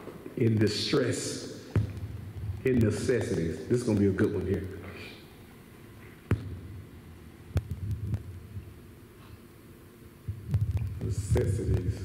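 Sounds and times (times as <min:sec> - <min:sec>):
sound system low hum: 0:00.0 - 0:12.0.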